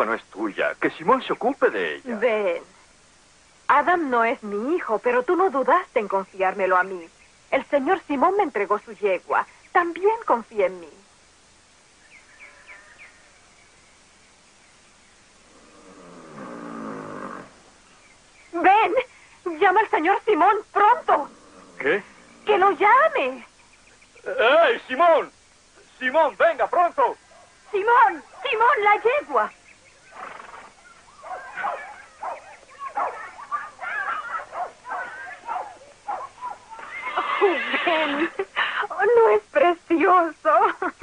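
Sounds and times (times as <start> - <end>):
animal calls: 12.1 - 13.6, 15.3 - 18.3, 20.1 - 24.9, 27.1 - 38.4
horse groaning: 15.4 - 17.7, 21.1 - 22.7.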